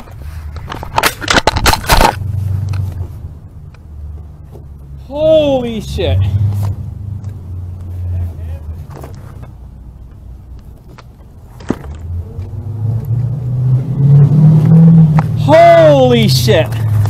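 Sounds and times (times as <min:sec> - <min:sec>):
passing cars engine rumble: 0:00.0 - 0:17.0.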